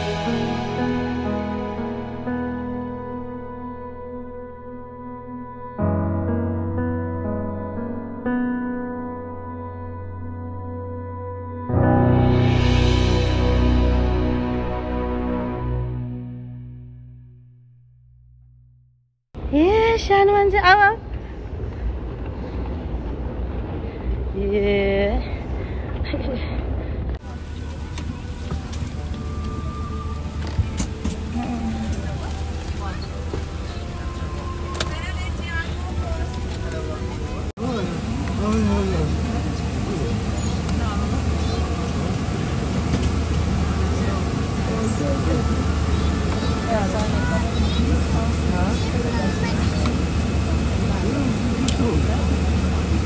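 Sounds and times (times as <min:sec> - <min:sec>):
hall background noise: 0:19.4 - 0:53.0
moving walkway rumble and hiss: 0:19.4 - 0:53.0
passengers chattering: 0:21.5 - 0:53.0
steady low cabin hum: 0:25.4 - 0:53.0.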